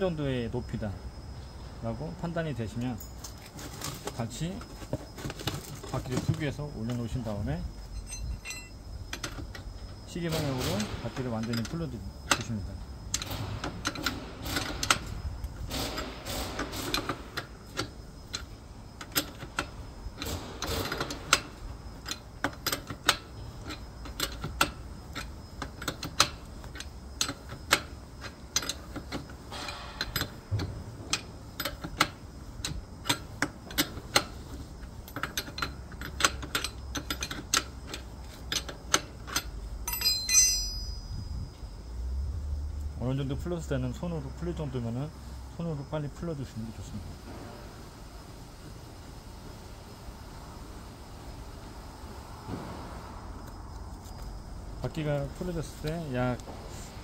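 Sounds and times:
ringing metal clink: 0:07.8 - 0:08.8, 0:39.8 - 0:41.3
wrench clicking on nut: 0:15.7 - 0:29.3, 0:30.0 - 0:34.3, 0:35.0 - 0:40.8.

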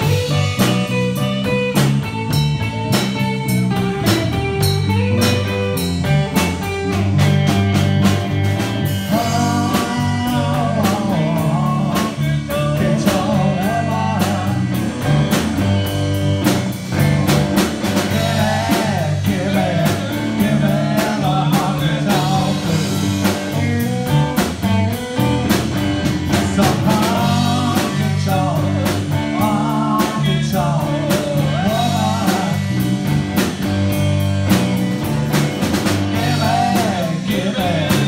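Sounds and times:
live blues-rock band playing: 0:00.0 - 0:38.0.

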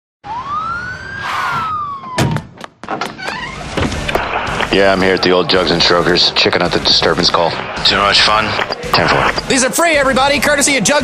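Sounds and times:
police siren wail: 0:00.2 - 0:02.5.

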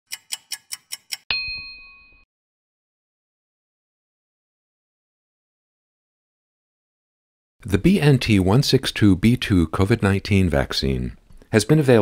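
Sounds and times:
clock ticking: 0:00.1 - 0:01.3
bell-like ding: 0:01.3 - 0:02.3.

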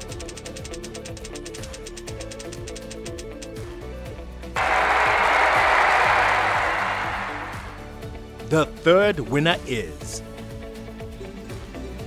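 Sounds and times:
background music: 0:00.0 - 0:12.0
burst of applause: 0:04.6 - 0:08.1.

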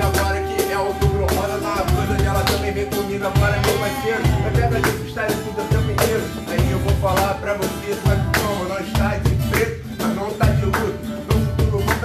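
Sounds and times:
cajon bass strokes: 0:00.0 - 0:12.0
strummed acoustic guitar: 0:00.0 - 0:12.0.

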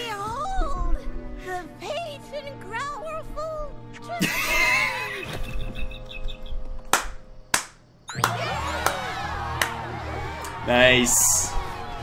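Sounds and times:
cartoon music: 0:08.1 - 0:09.4.

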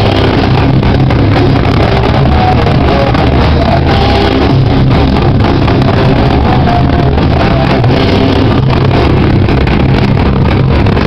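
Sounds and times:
bass guitar: 0:00.0 - 0:11.0
distorted guitars: 0:00.0 - 0:11.0
drums: 0:00.0 - 0:11.0.

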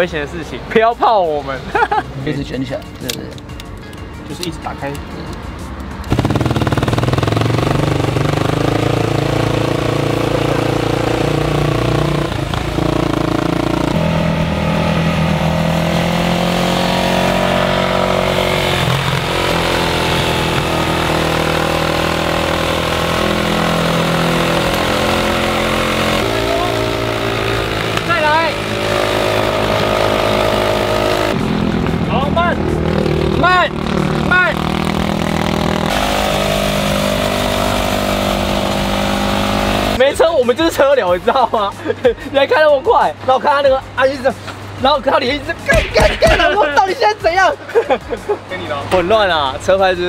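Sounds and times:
motorcycle engine running: 0:06.0 - 0:40.0.

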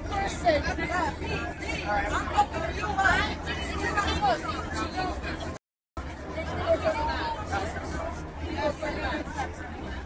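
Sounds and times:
passengers talking: 0:00.0 - 0:10.0.

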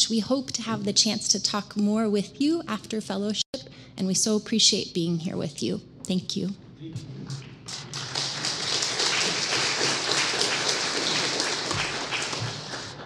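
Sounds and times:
congregation applauding: 0:07.3 - 0:13.0.

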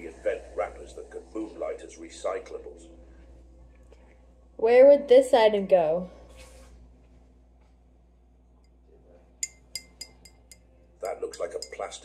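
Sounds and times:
glass jar clinking: 0:09.4 - 0:12.0.

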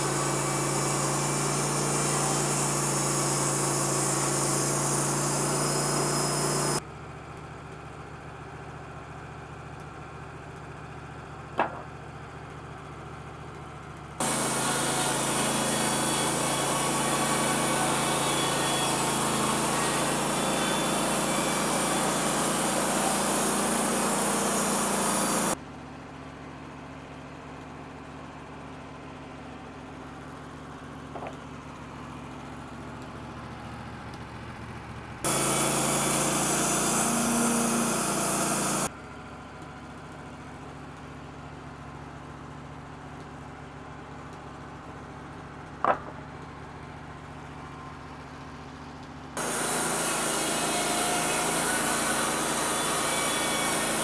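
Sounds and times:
band saw cutting log: 0:00.0 - 0:06.8, 0:14.2 - 0:25.6, 0:35.2 - 0:38.9, 0:49.4 - 0:54.0
sawmill humming: 0:00.0 - 0:06.8, 0:14.2 - 0:25.6, 0:35.2 - 0:38.9, 0:49.4 - 0:54.0.

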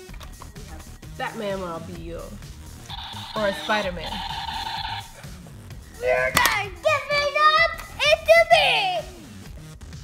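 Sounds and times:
harsh electronic toy tone: 0:02.9 - 0:05.2.

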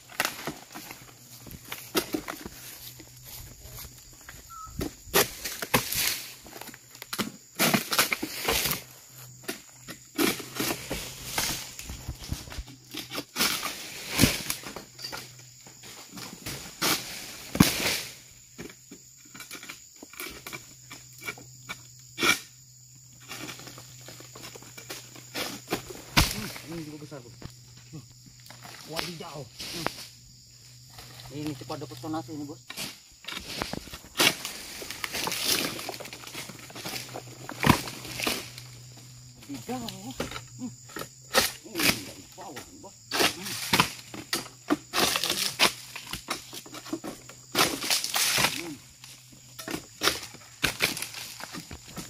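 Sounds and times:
palm fronds cracking and rustling: 0:00.0 - 0:20.6, 0:23.2 - 0:52.0
heavy thumps of falling fronds: 0:25.7 - 0:26.7.

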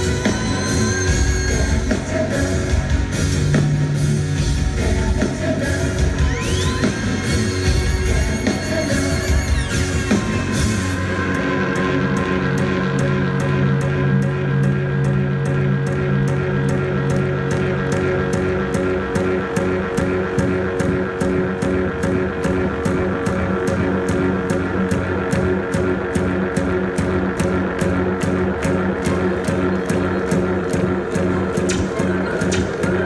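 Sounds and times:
electronic rock band over loudspeakers: 0:00.0 - 0:33.0.

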